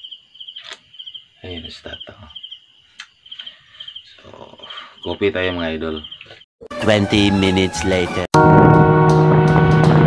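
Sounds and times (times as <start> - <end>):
cricket chirping: 0.0 - 6.5.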